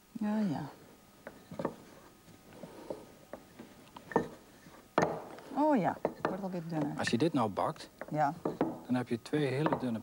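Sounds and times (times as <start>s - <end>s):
wood knocking on counter: 5.0s - 5.3s, 8.0s - 8.9s, 9.6s - 10.0s.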